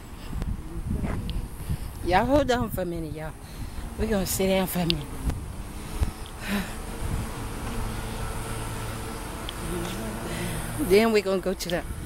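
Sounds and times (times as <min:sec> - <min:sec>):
rush of road noise: 0:00.0 - 0:12.0.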